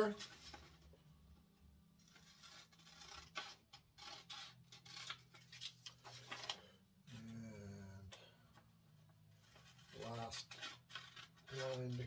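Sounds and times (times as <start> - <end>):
scissors snipping paper: 2.0 - 5.8.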